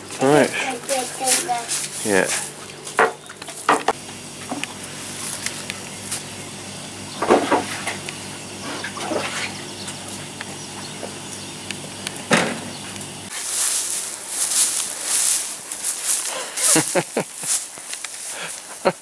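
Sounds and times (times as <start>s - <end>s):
low machine hum: 0.0s - 17.6s.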